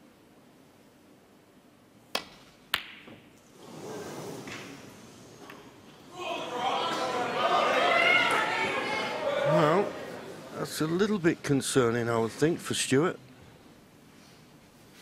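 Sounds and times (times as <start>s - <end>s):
crowd murmuring: 6.0s - 11.5s.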